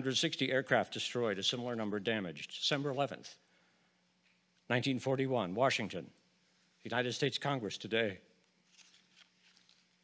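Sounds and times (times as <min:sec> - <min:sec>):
man reading aloud: 0:00.0 - 0:03.4, 0:04.7 - 0:06.2, 0:06.8 - 0:08.3
low steady room hum: 0:00.0 - 0:10.0.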